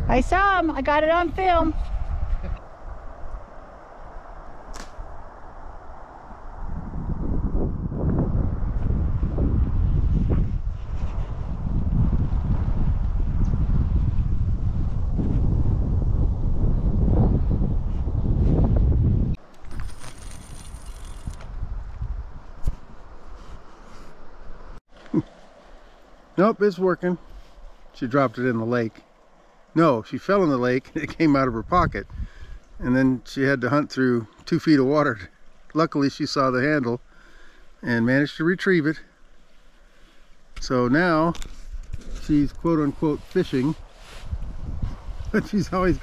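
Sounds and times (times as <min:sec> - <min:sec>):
wind buffeting microphone: 0:00.0 - 0:24.8, 0:31.0 - 0:33.1, 0:40.6 - 0:46.0.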